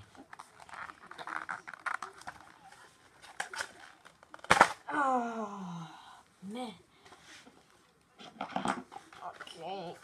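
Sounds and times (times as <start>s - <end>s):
cardboard rustling and scraping: 0.0s - 4.4s.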